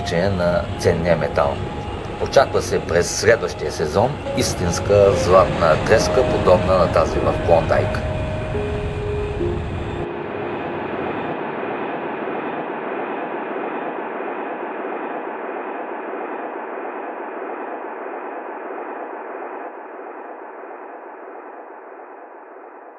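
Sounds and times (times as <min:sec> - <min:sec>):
steady rushing noise: 0:00.0 - 0:22.9.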